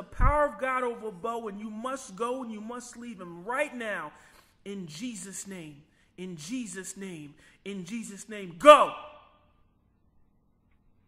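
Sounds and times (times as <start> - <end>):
man speaking: 0.0 - 9.2.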